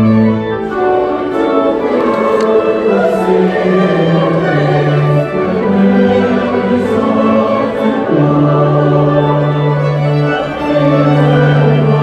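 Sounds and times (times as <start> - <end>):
choir singing with orchestra: 0.0 - 12.0.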